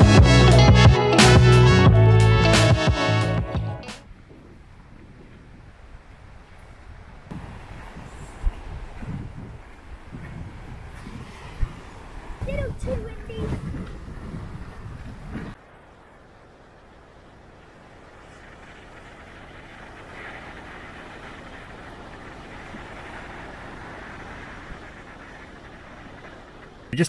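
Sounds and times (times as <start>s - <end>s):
surf: 0.0s - 4.6s, 7.3s - 27.0s
wind buffeting microphone: 0.0s - 27.0s
wind hiss: 3.9s - 27.0s.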